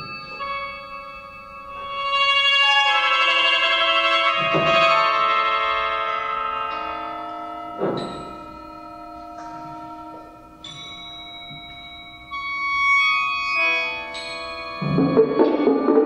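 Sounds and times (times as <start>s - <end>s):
sheng reed chords: 0.0s - 16.0s
struck percussion note: 14.8s - 16.0s.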